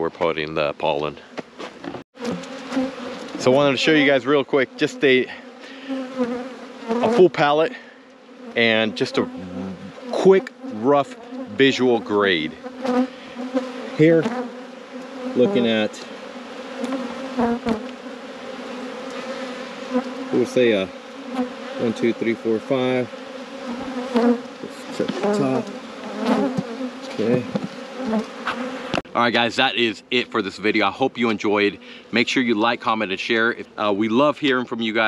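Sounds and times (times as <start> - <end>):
honeybees buzzing: 1.2 - 34.0.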